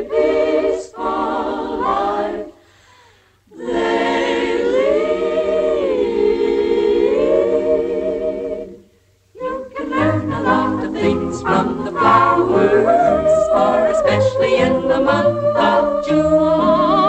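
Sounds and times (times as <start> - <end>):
choir singing a cappella: 0.0 - 17.0.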